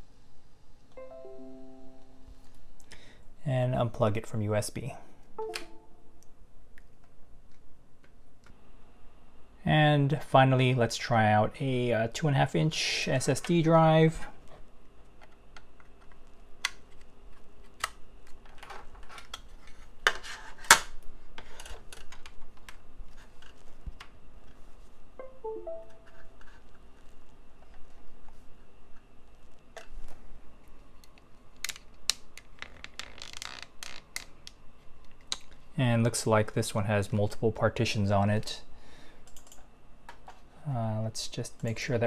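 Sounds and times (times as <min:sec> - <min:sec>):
short tone chime: 0:01.0 - 0:02.3, 0:25.2 - 0:26.3.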